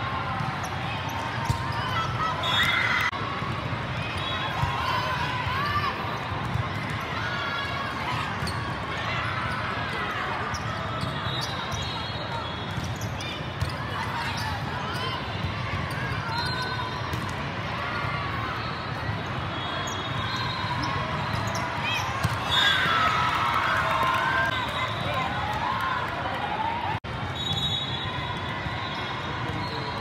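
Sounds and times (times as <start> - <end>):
volleyballs hit and bouncing: 21.0 - 23.2.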